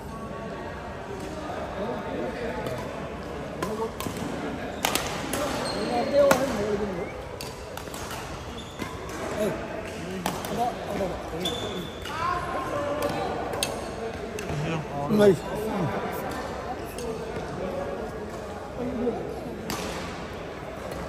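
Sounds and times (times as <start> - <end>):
rackets hitting shuttlecock: 3.6 - 5.6, 7.3 - 11.2, 19.6 - 20.2
shoe squeaks on court floor: 4.7 - 6.4, 8.2 - 9.1, 11.3 - 12.2.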